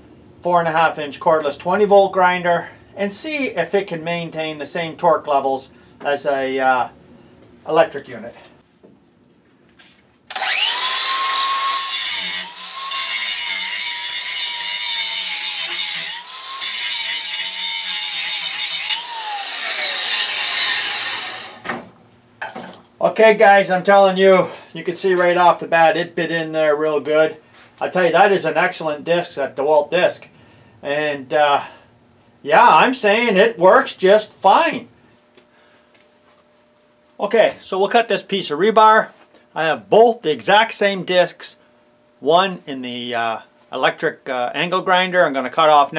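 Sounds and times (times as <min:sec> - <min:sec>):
faint electrical hum: 0:00.0 - 0:45.9
angle grinder grinding steel: 0:10.3 - 0:21.6
grinder spinning down: 0:10.3 - 0:21.6.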